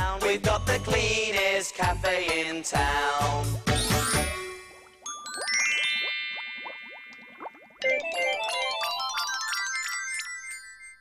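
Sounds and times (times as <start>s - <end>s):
twinkling bell-like chimes: 3.8s - 6.9s, 7.8s - 11.0s.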